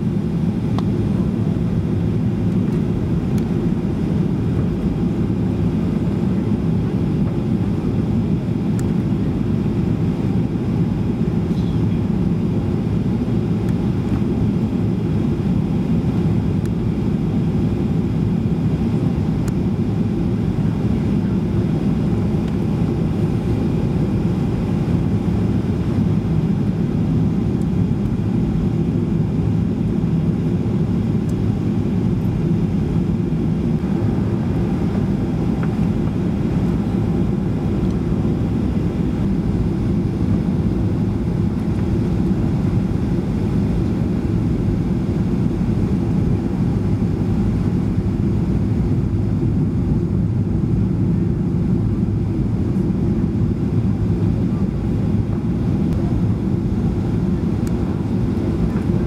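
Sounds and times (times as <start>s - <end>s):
airplane cabin engine rumble: 0.0s - 59.0s.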